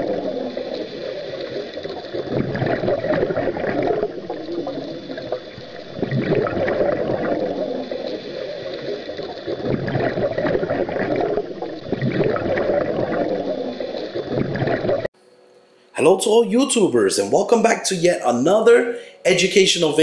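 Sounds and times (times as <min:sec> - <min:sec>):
bubbling gurgling water: 0:00.0 - 0:15.1.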